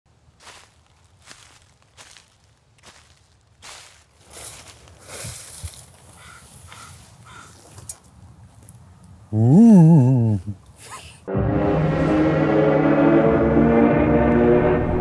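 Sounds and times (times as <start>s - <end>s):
footsteps crunching dry leaves: 0.1s - 7.8s
leaves rustling: 0.1s - 9.1s.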